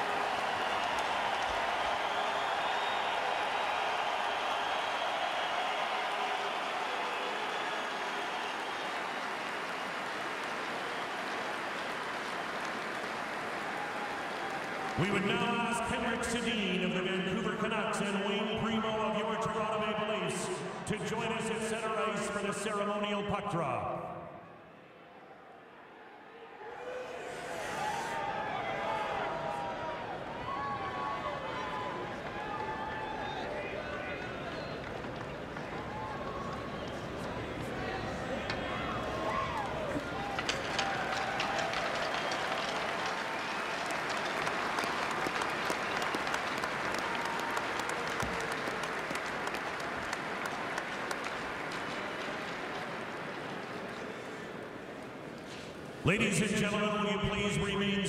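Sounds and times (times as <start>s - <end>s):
crowd cheering and shouting: 0.0s - 9.6s, 26.2s - 45.4s
heavy clapping: 0.0s - 15.5s, 38.5s - 54.1s.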